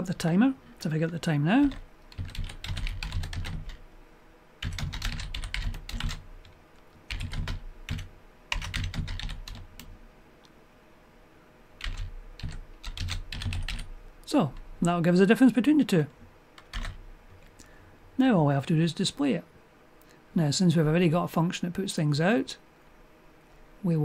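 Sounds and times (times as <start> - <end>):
typing on computer keyboard: 1.6 - 3.8, 4.6 - 9.9, 11.8 - 13.9, 16.6 - 17.0.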